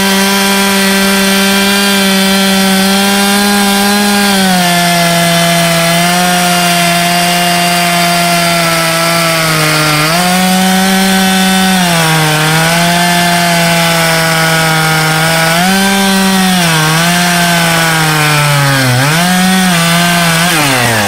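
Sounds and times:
chainsaw cutting wood: 0.0s - 21.0s.

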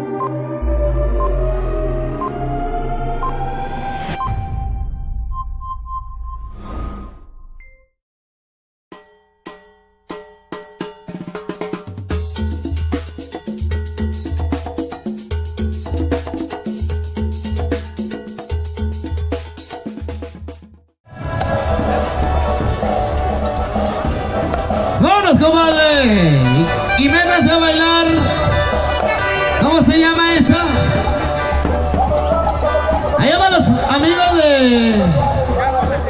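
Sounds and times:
keyboard: 0.0s - 4.9s, 21.1s - 36.0s
pulsing bass beat: 0.2s - 3.6s
deep low drone: 0.6s - 4.8s
live band music through speakers: 21.9s - 36.0s.

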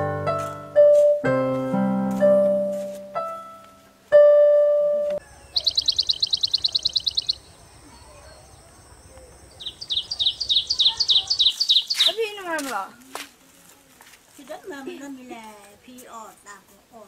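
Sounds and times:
piano note: 0.0s - 5.2s
bird trilling high chirps: 5.2s - 12.4s.

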